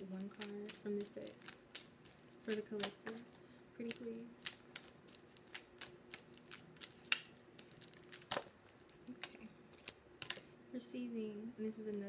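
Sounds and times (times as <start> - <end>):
cards being shuffled: 0.0 - 10.4.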